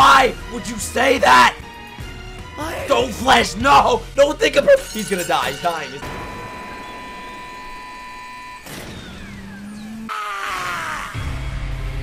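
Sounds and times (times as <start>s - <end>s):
steady high tone: 5.0s - 10.1s.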